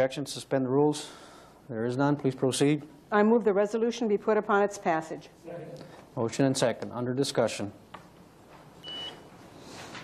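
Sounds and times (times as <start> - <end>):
short electronic beep: 8.8 - 9.2.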